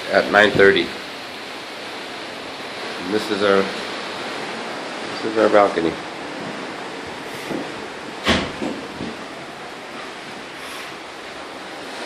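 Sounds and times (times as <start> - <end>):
sea noise: 0.0 - 12.0
sharp knocks: 7.4 - 9.2.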